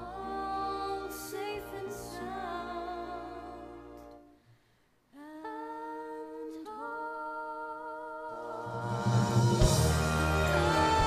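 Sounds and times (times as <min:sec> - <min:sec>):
person singing long wordless notes: 0:00.0 - 0:04.2, 0:05.2 - 0:11.0.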